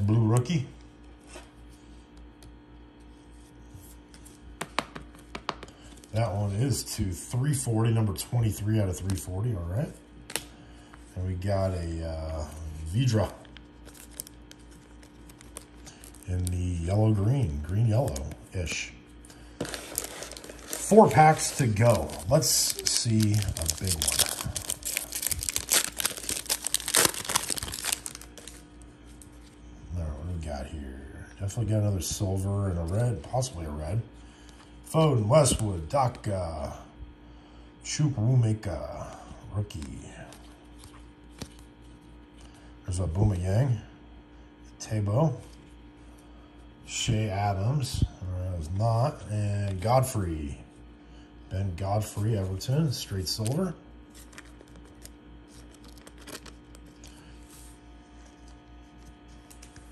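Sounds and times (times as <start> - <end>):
foil wrapper tearing and crinkling: 13.7 - 16.5, 19.6 - 28.6, 54.2 - 57.2
card scraping against plastic: 19.6 - 28.6.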